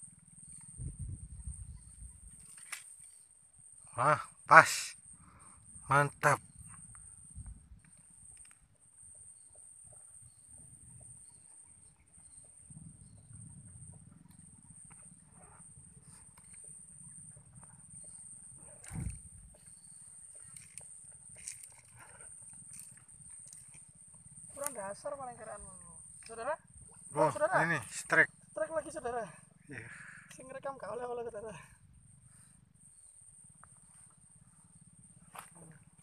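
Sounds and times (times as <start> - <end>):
wind rumble on microphone: 0.6 - 2.4, 18.6 - 19.6.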